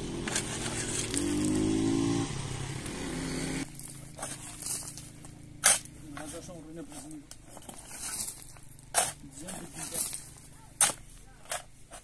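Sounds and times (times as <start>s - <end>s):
shovel scraping gravel: 0.0s - 1.9s, 3.4s - 12.0s.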